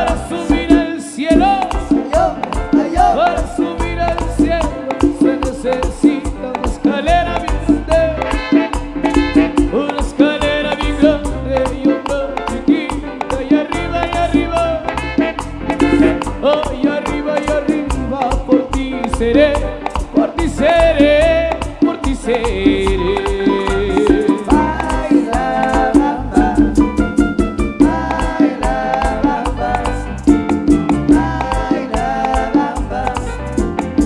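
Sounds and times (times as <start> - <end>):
live band playing latin dance music: 0.0 - 34.0.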